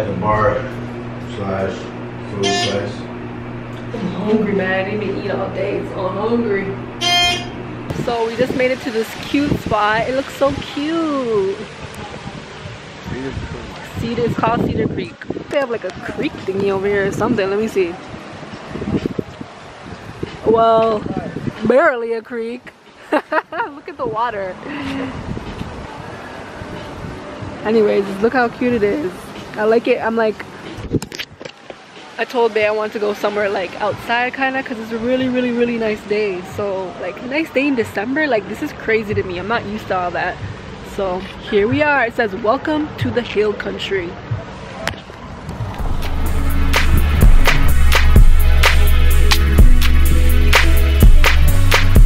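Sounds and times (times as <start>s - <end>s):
outdoor background noise: 0.0s - 49.4s
wind on microphone: 7.6s - 22.0s, 24.0s - 29.2s, 30.7s - 31.4s
music with heavy bass: 45.6s - 52.0s.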